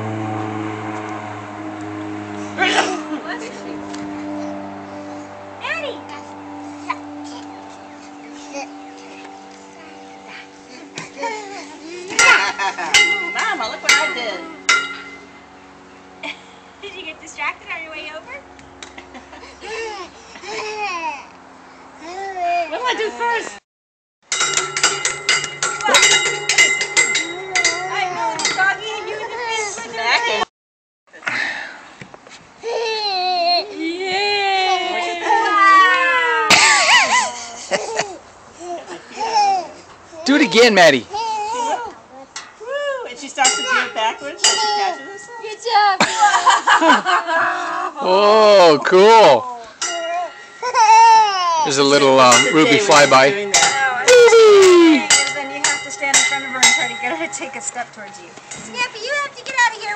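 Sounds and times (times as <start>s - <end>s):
steady metallic ringing: 0.0s - 19.4s, 24.3s - 30.4s, 42.3s - 47.3s, 48.6s - 59.9s
low machine hum: 0.0s - 21.0s
people laughing: 10.8s - 13.6s, 46.0s - 48.4s
sharp ringing clinks: 12.1s - 15.5s, 24.3s - 29.1s, 43.4s - 45.9s, 49.8s - 51.3s, 52.2s - 54.0s, 54.8s - 59.0s
light metallic clinking: 24.3s - 29.0s, 55.0s - 59.0s
excited voices: 33.0s - 37.7s, 46.1s - 50.0s, 51.6s - 55.3s.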